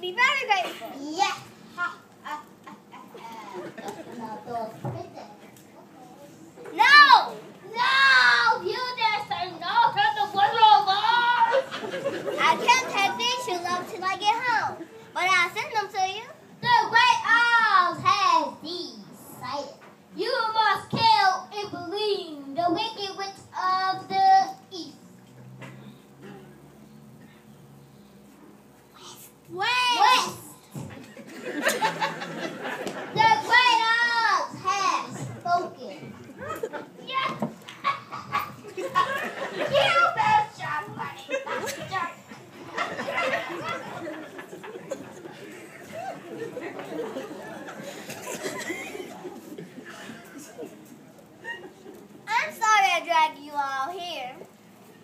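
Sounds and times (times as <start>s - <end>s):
children's voices speaking: 0.0s - 54.8s.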